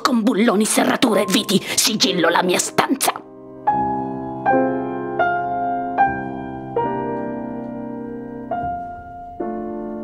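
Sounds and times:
slow piano chords: 0.5 - 10.0.

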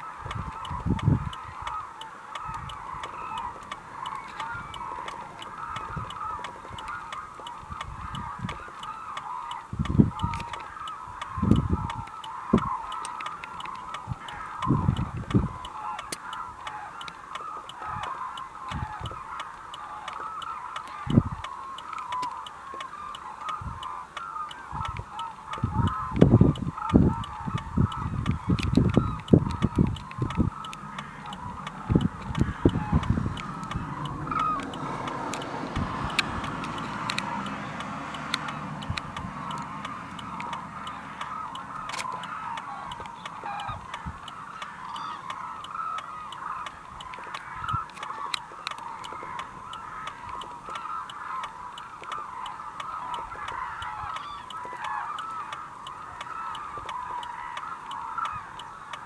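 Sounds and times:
cranes honking chorus: 0.0 - 59.0
low rumbles: 24.8 - 44.7.

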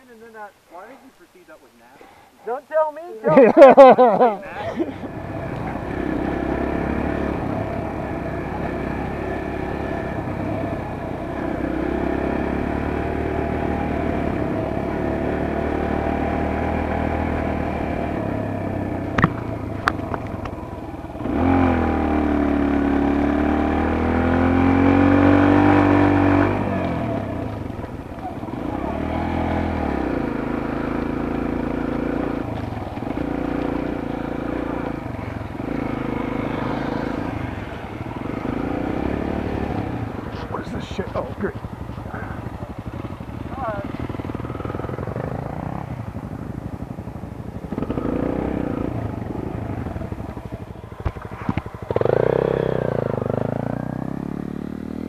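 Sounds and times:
dirt bike engine running: 3.3 - 55.0.

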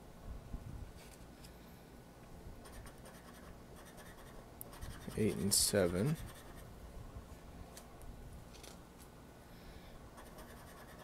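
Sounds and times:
coin scratching lottery ticket: 2.6 - 6.7, 10.2 - 11.0
light clicks of card handling: 7.7 - 9.1.

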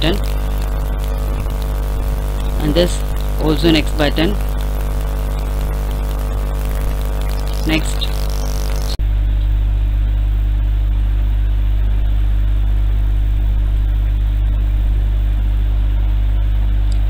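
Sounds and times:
even hiss: 0.0 - 9.0
low electrical hum: 0.0 - 17.0.

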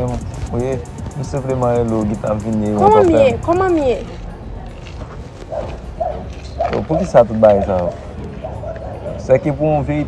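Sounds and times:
person speaking: 0.8 - 4.0.

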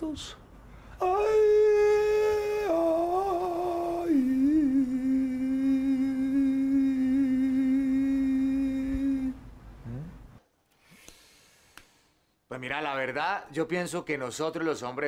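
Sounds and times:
person humming: 1.0 - 10.4.

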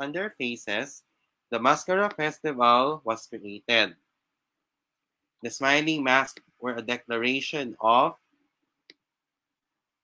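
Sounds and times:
man speaking: 0.0 - 4.1, 5.4 - 8.3.

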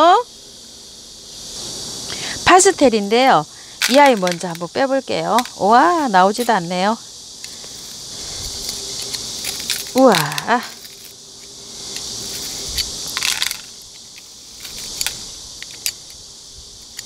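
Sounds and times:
metal utensil scraping in gravel: 3.8 - 4.7, 7.8 - 16.0.

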